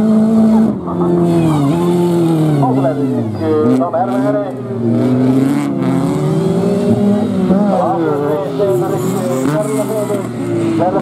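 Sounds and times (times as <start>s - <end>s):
race car engines revving: 0.0s - 11.0s.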